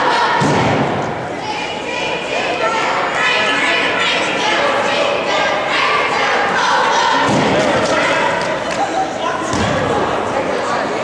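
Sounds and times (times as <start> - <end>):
voices calling out: 0.0 - 11.0.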